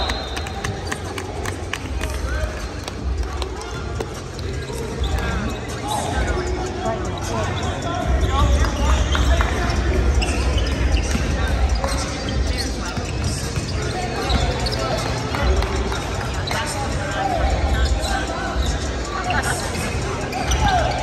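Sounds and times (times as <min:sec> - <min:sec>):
voices in gym: 0:00.0 - 0:21.0.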